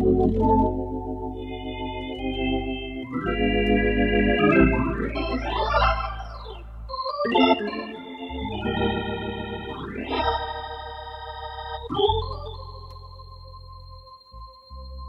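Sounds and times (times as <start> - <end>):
organ playing held chords: 0.0 - 15.0.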